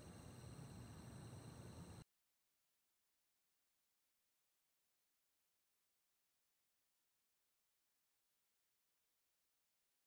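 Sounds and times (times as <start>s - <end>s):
faint room tone hiss: 0.0s - 2.0s.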